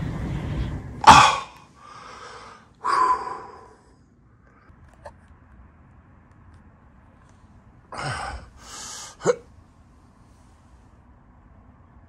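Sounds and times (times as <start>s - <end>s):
steady low hum: 0.0s - 12.0s
outward breath: 1.1s - 4.8s, 8.0s - 9.3s.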